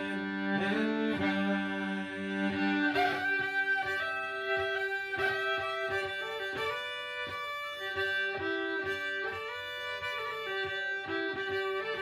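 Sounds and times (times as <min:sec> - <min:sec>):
bowed fiddle: 0:00.0 - 0:12.0.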